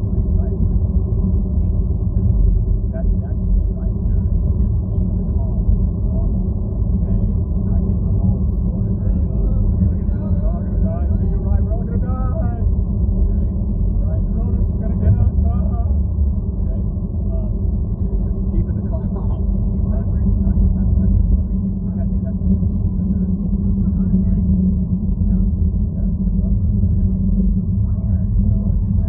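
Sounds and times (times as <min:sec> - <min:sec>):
car engine rumble: 0:00.0 - 0:29.0
faint indistinct voices: 0:00.0 - 0:29.0.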